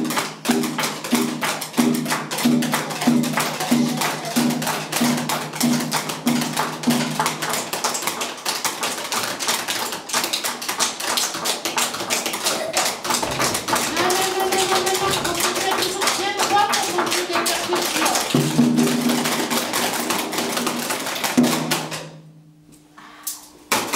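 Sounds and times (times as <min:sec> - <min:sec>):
sticks tapping on chairs: 0:11.7 - 0:22.1.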